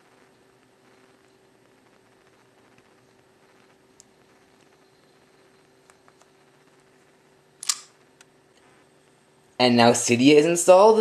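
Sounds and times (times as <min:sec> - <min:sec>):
faint steady hum: 0:00.0 - 0:11.0
sharp click: 0:07.6 - 0:08.3.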